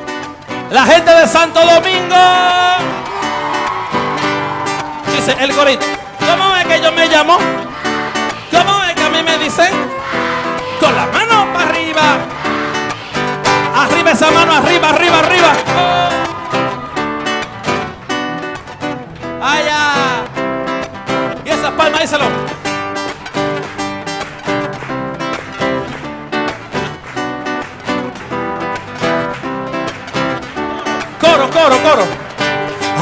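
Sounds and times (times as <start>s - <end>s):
live band playing upbeat song: 0.0s - 33.0s
voices shouting: 2.3s - 18.0s.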